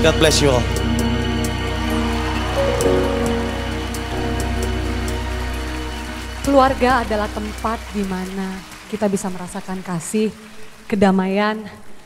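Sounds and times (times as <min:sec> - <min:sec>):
live band playing soft chords: 0:02.4 - 0:07.6
woman speaking: 0:10.9 - 0:11.8.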